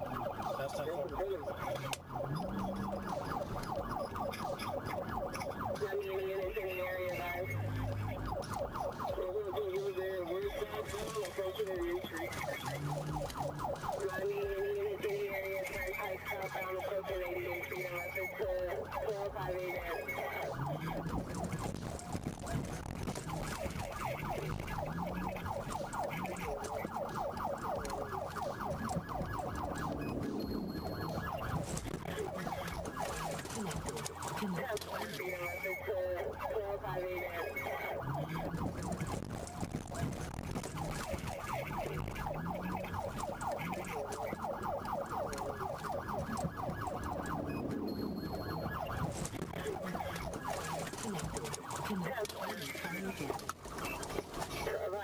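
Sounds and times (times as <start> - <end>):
police siren wailing: 0.0 - 55.0
road and vehicle noise: 0.0 - 55.0.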